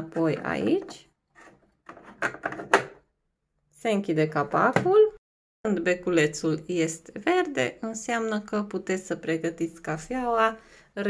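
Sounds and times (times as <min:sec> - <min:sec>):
plastic rubbing and scraping: 0:00.2 - 0:03.0.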